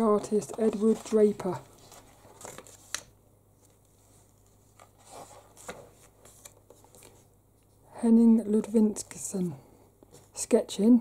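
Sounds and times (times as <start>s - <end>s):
book pages turning: 0.0s - 7.3s.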